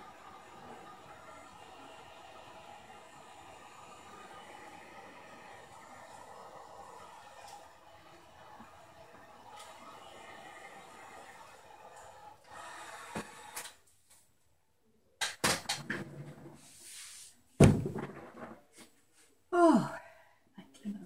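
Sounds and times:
heat gun blowing: 0.0 - 13.8.

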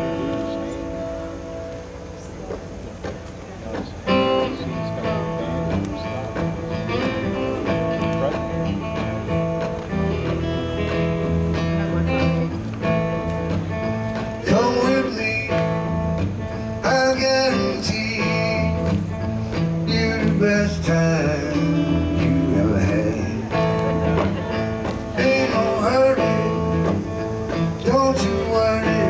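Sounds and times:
acoustic guitar playing blues: 0.0 - 29.0
electric guitar playing blues: 0.0 - 29.0.

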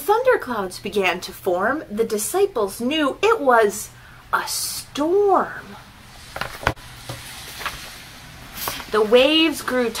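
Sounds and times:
woman reading aloud: 0.0 - 5.8, 8.6 - 10.0
book pages turning: 6.3 - 7.9.

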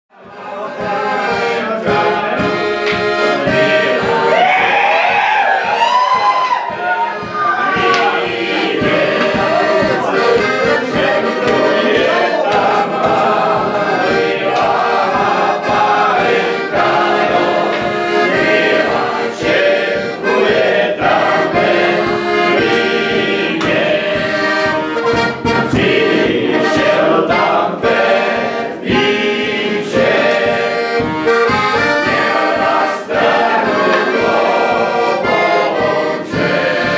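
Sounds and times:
accordion playing folk tune: 0.1 - 36.9
people singing along: 0.1 - 36.9
steady beat: 0.2 - 36.9.

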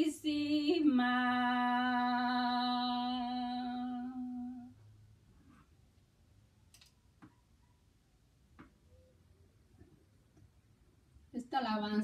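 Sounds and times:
faint clicks: 6.7 - 7.4.

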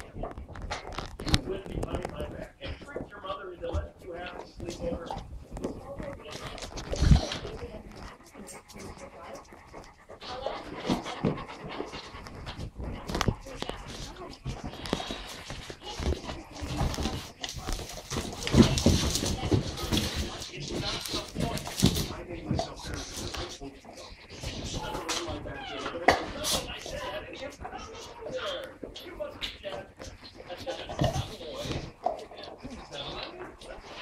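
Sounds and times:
dogs panting: 0.0 - 34.0
knocks and shuffling: 0.0 - 34.0.

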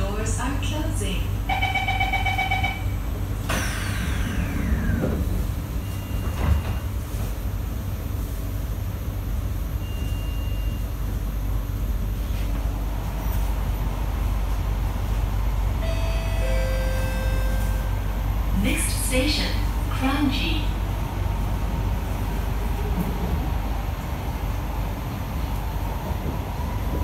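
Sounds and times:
train car low hum: 0.0 - 27.0
train doors closing: 1.5 - 8.7, 12.2 - 27.0
traction motors whining: 3.4 - 6.6
falling whine of doors: 3.5 - 7.0.

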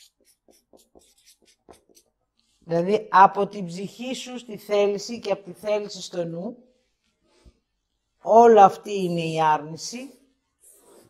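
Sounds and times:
marker scratching on paper: 0.0 - 2.6, 10.6 - 11.0.

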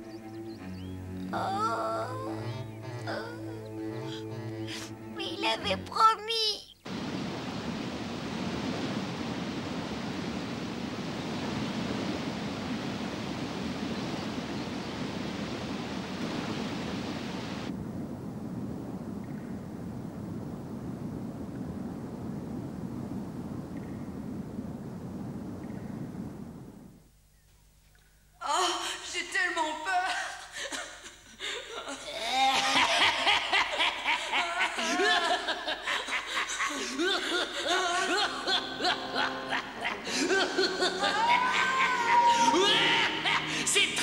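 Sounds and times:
waterfall rushing: 6.9 - 17.7, 34.2 - 44.0.

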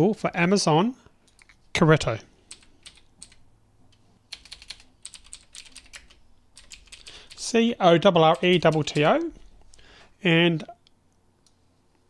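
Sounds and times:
typing on computer keyboard: 2.5 - 3.4, 4.3 - 7.4, 8.3 - 9.3.

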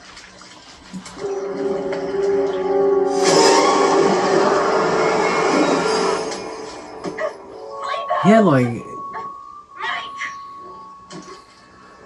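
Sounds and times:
water gurgling and splashing: 0.0 - 6.3.

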